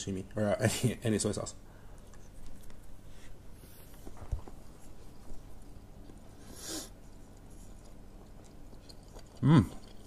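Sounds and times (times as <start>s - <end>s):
person chewing: 6.0s - 10.0s.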